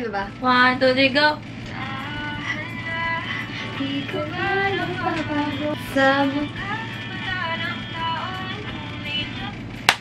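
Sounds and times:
steady low hum: 0:00.0 - 0:10.0
song with singing voice: 0:01.7 - 0:09.8.

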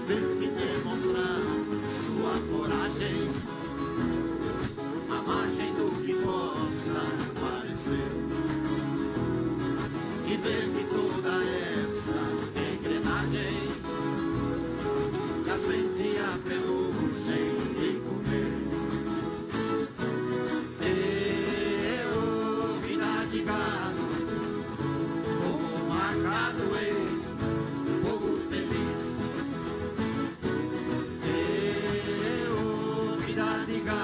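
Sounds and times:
ensemble of plucked folk guitars: 0:00.0 - 0:34.0.

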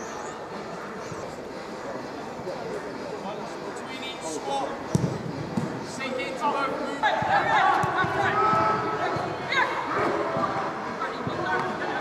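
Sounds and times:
football being kicked: 0:04.9 - 0:05.7.

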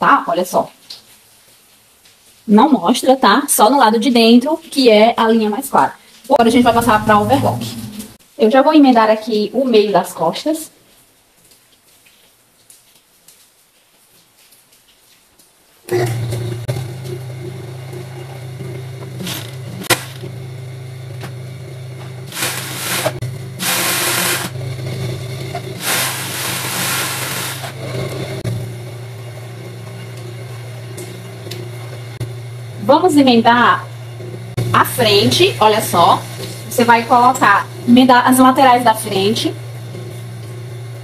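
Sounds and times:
overlock machine motor humming: 0:06.4 - 0:08.2, 0:15.9 - 0:41.0
sewing machine stitching fabric: 0:22.3 - 0:28.4.

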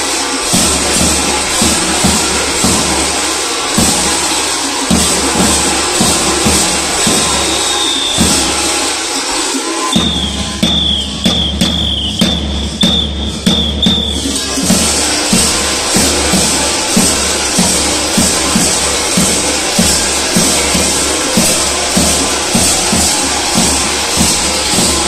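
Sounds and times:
costume bells jangling: 0:00.0 - 0:25.0
drum beating steadily: 0:00.0 - 0:25.0.

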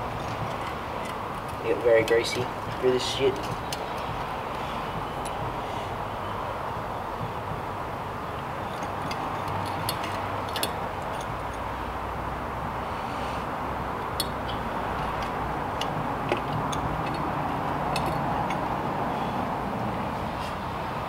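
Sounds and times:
small metal clicks and taps: 0:08.7 - 0:11.3, 0:14.0 - 0:18.7.

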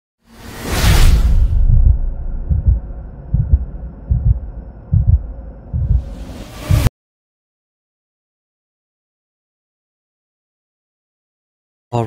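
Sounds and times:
whoosh: 0:00.3 - 0:06.9
deep bass rumble: 0:01.2 - 0:06.9
low bass thumps: 0:01.5 - 0:06.9.

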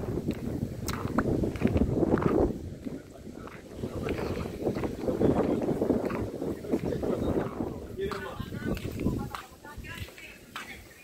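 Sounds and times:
wind buffeting microphone: 0:00.0 - 0:11.0
faint voices: 0:00.9 - 0:11.0.

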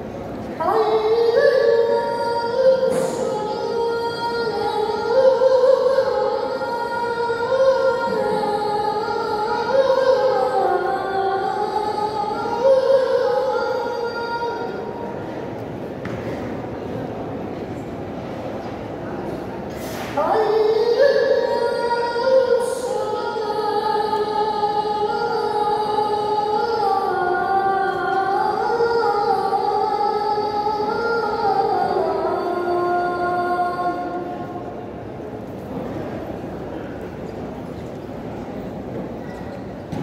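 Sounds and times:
crowd murmuring in echoing hall: 0:00.0 - 0:40.0
man chanting over loudspeakers: 0:00.6 - 0:15.1.

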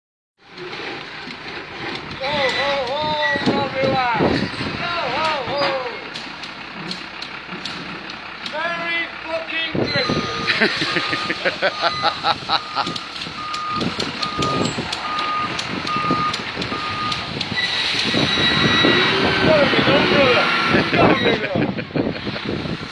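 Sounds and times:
engine running: 0:00.4 - 0:22.9
outdoor background noise: 0:00.4 - 0:22.9
sharp metallic clicks: 0:05.2 - 0:08.7, 0:12.1 - 0:18.4
reversing alarm beeping: 0:09.8 - 0:21.4.

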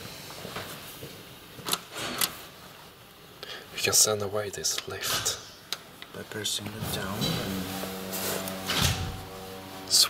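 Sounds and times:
elevator machinery hum: 0:06.5 - 0:10.0.

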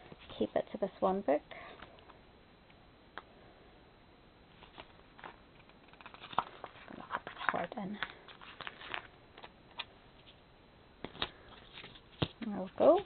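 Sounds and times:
paper sticker sheets rustling: 0:04.6 - 0:10.4, 0:11.0 - 0:13.0.

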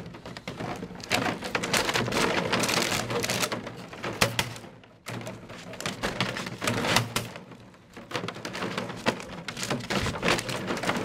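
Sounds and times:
plastic bottles crackling and clattering: 0:00.0 - 0:11.0.

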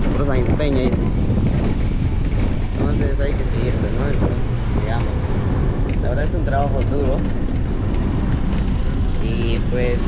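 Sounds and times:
minibus rumbling: 0:00.0 - 0:10.0
wind on microphone: 0:00.0 - 0:10.0.

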